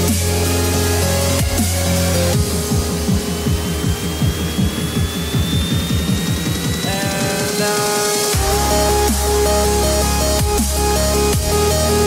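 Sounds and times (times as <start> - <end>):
falling bass hits: 0.0 - 7.2, 8.4 - 12.0
dubstep music: 0.0 - 12.0
rising high tone: 0.0 - 12.0.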